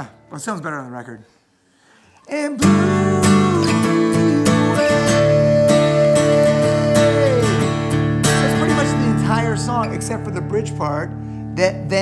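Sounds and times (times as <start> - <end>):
acoustic guitar strumming chords: 2.5 - 12.0
person singing long note: 2.6 - 7.7.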